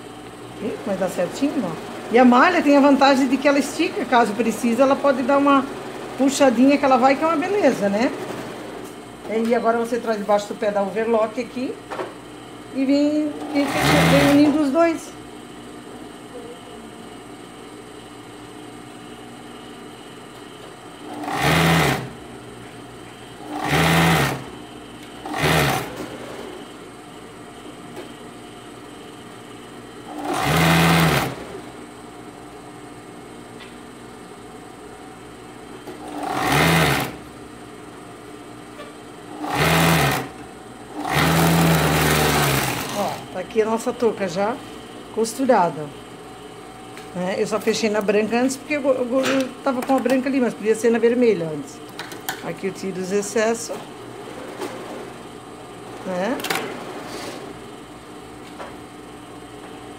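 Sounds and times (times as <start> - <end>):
steady hum: 0.0 - 59.9
overlock sewing machine stitching: 13.4 - 14.6, 21.1 - 22.2, 23.4 - 24.5, 25.2 - 26.4, 30.1 - 31.6, 36.0 - 37.2, 39.4 - 43.3.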